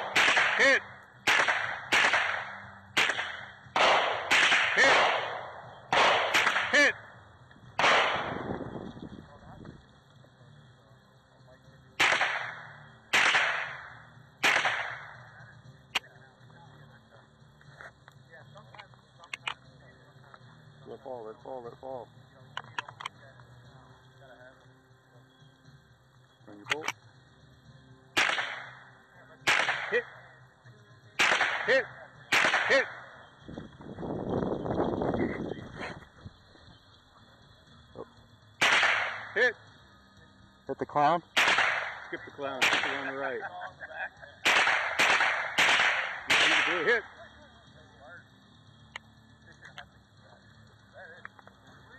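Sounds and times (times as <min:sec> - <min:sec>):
rifle shots: 0:00.0 - 0:07.0, 0:07.8 - 0:08.6, 0:12.0 - 0:15.2, 0:28.2 - 0:30.2, 0:31.2 - 0:33.1, 0:38.6 - 0:39.4, 0:41.4 - 0:43.3, 0:44.4 - 0:47.0
sharp clicks: 0:18.0 - 0:19.7, 0:26.6 - 0:27.0.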